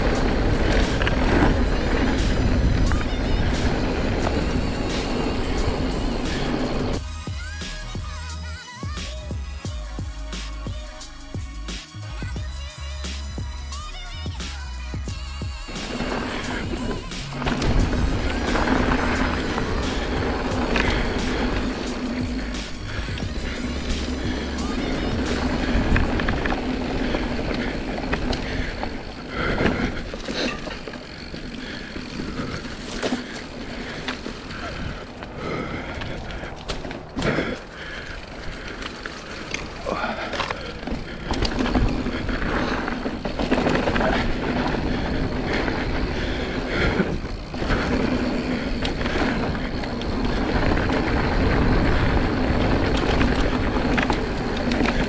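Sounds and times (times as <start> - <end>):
bike tyres on dirt: 0.0 - 55.0
bike knocks and rattles: 12.2 - 55.0.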